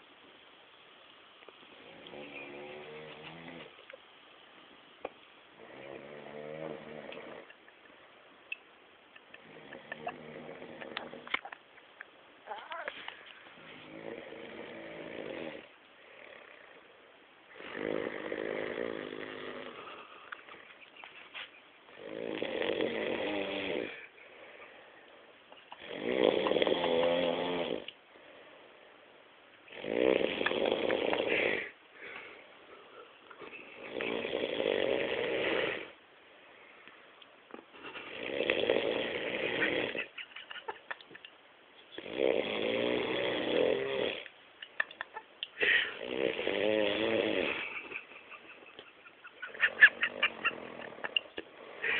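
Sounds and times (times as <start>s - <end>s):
man snoring: 1.7s - 3.7s, 5.6s - 7.5s, 9.4s - 11.2s, 13.6s - 16.9s, 17.5s - 20.1s, 22.0s - 24.1s, 25.8s - 27.9s, 29.7s - 31.8s, 33.8s - 36.0s, 38.1s - 40.1s, 42.0s - 44.3s, 45.8s - 47.9s
quiet breath: 19.6s - 20.5s, 23.8s - 25.5s, 28.0s - 29.3s, 31.2s - 33.8s, 35.8s - 38.1s, 45.5s - 46.0s, 51.6s - 51.9s.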